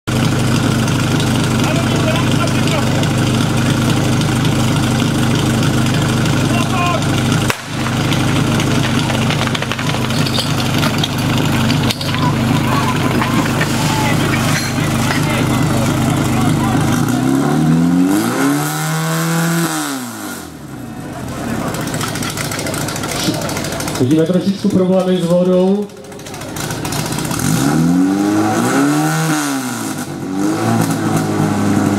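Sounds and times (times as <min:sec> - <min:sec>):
pump engine running and revving: 0:00.0 - 0:31.9
people shouting: 0:06.5 - 0:07.1, 0:12.0 - 0:17.5.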